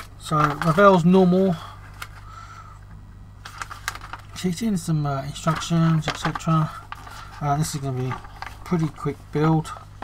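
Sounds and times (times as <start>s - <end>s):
paper crinkling: 0.0s - 1.2s, 3.4s - 4.7s, 5.3s - 10.0s
steady low hum: 0.0s - 10.0s.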